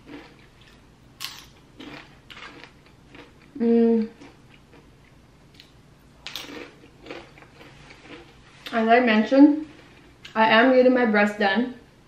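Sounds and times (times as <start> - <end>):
chewing crunchy chips: 0.0 - 8.7.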